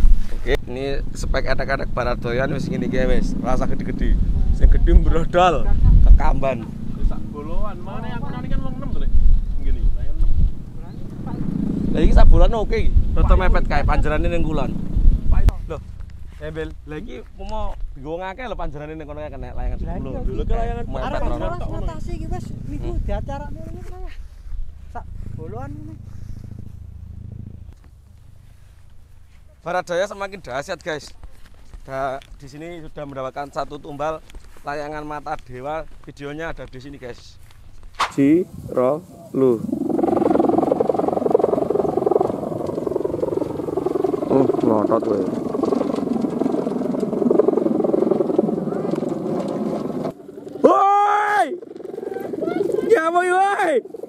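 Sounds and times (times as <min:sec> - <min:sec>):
kite hummer fluttering drone: 0:19.8 - 0:29.6, 0:39.3 - 0:54.0
man shouting: 0:50.6 - 0:51.6, 0:52.8 - 0:53.8.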